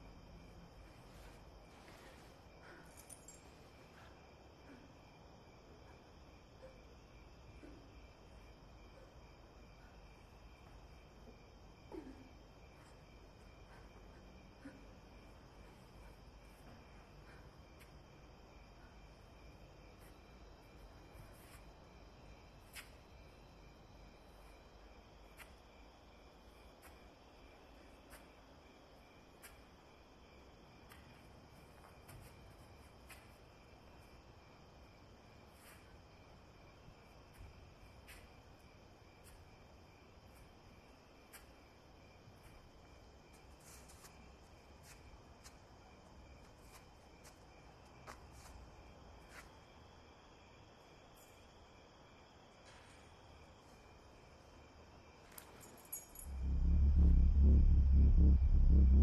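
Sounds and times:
crickets chirring: 0.0s - 59.0s.

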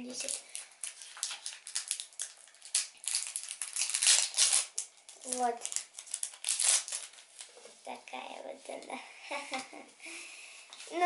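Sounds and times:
plastic packet crinkling: 0.0s - 7.5s.

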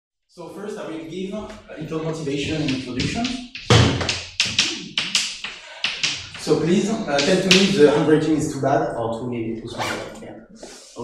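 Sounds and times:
chalk tapping on chalkboard: 2.4s - 7.8s.

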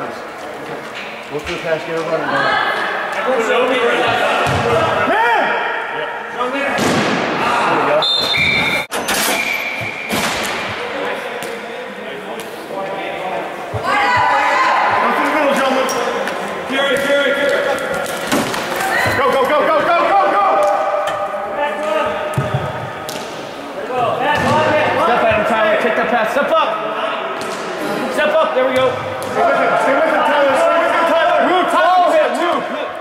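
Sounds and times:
players shouting in echoing rink: 2.1s - 8.6s, 13.1s - 33.0s
slams against boards: 6.8s - 7.4s.

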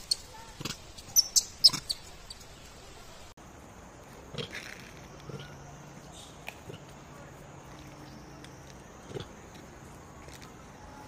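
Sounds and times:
monkeys squeaking: 0.0s - 2.5s.

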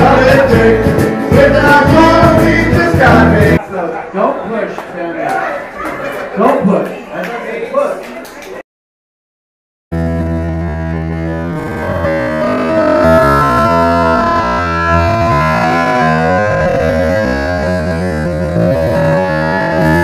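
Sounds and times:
live band with guitars: 0.0s - 3.6s
steady bass line: 0.0s - 3.6s, 9.9s - 20.0s.

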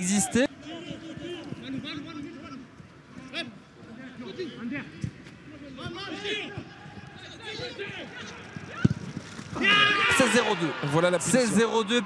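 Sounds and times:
footballers shouting: 9.6s - 12.0s.

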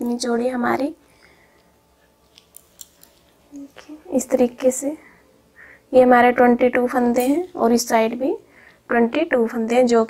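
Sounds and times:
knitting needles clicking: 2.2s - 3.7s.

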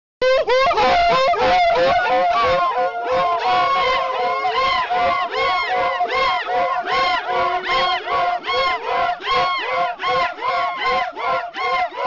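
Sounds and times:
men whooping cries: 0.2s - 12.0s.

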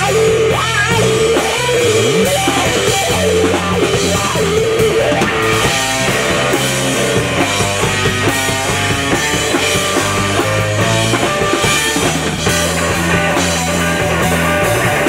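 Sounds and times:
drum kit: 0.0s - 15.0s
electric guitar solo: 0.0s - 15.0s.

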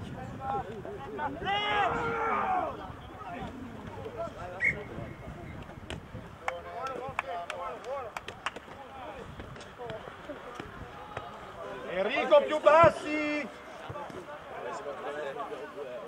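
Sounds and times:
voices shouting calls: 1.2s - 5.1s.

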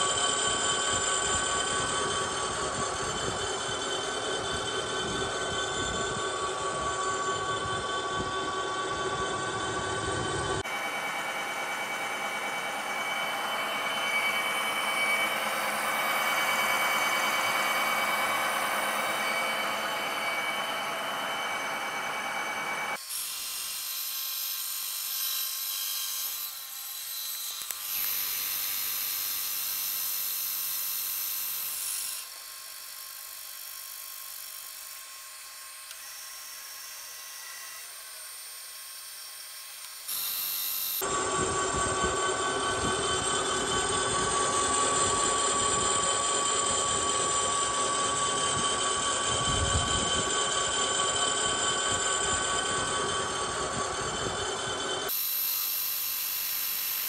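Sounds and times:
milling machine squealing whine: 0.0s - 57.0s.

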